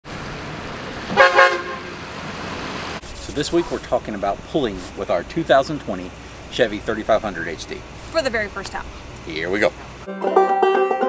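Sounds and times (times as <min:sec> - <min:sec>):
low rumble of truck and road: 0:00.0 - 0:11.0
pickup truck horn toots: 0:01.1 - 0:02.0.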